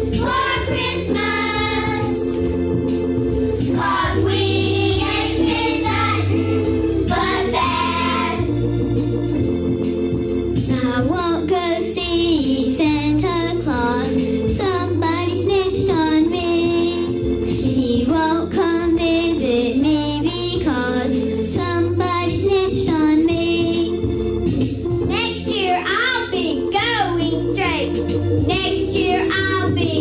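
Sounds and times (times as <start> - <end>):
organ accompaniment: 0.0 - 11.8, 20.5 - 30.0
girl singing: 0.2 - 2.3, 10.7 - 24.0, 25.1 - 30.0.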